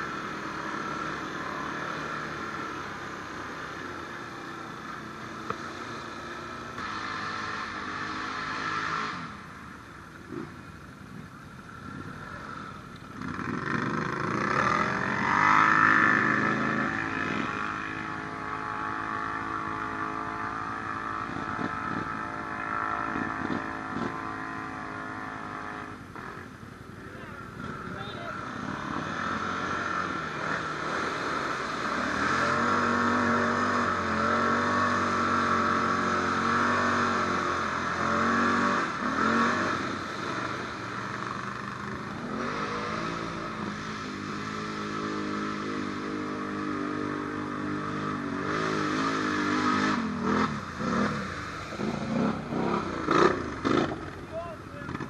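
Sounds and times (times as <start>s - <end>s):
atv engine revving: 0.0s - 55.0s.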